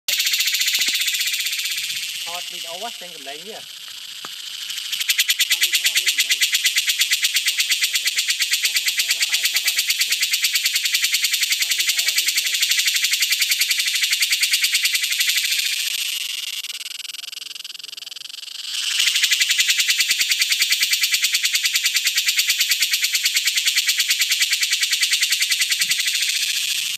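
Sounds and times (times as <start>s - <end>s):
cicada pulsing buzz: 0.1s - 26.9s.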